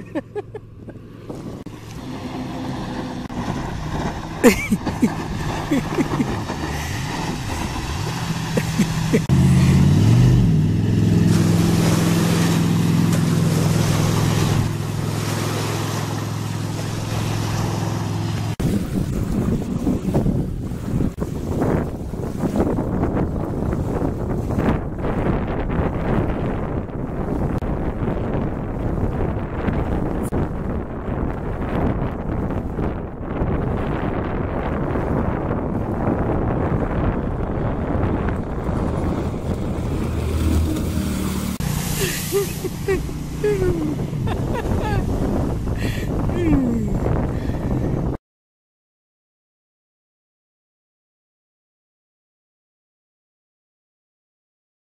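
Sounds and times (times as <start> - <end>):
jetboat engine droning: 0.0 - 20.9, 36.7 - 46.8
wind buffeting microphone: 0.0 - 48.2.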